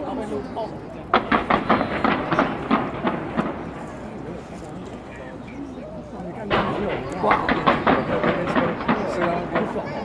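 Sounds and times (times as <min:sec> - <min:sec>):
fireworks bursting: 0:01.1 - 0:05.1, 0:06.5 - 0:10.0.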